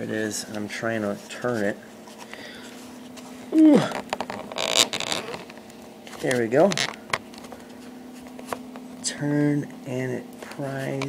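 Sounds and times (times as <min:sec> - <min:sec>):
rasping plastic scrape: 0:03.8 - 0:05.6.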